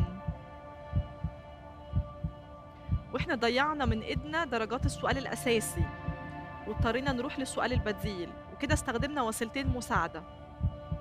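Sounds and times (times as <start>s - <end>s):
sustained synth drone: 0.0s - 11.0s
heartbeat-like double thump: 1.0s - 1.4s, 2.0s - 3.2s, 9.7s - 11.0s.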